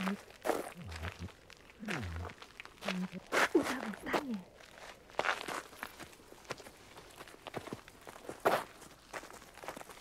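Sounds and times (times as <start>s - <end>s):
footsteps in a cave: 0.0s - 10.0s.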